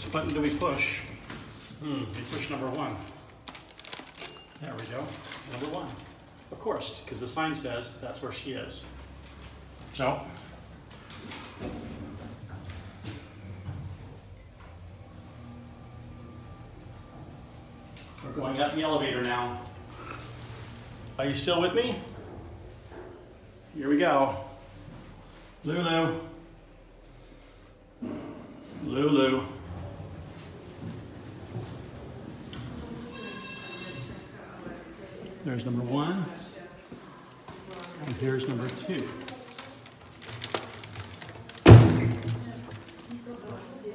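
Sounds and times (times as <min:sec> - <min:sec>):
low indoor background noise: 0:00.0 - 0:43.9
lift low hum with whine: 0:12.6 - 0:33.0.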